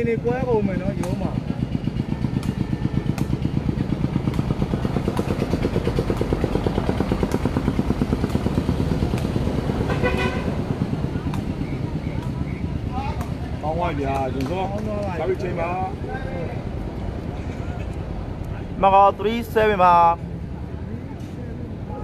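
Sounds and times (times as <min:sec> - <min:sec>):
small engine pulsing: 0:00.2 - 0:12.9.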